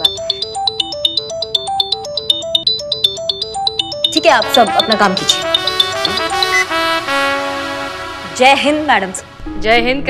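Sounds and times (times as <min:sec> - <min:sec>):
smartphone ringtone: 0:00.0 - 0:07.0.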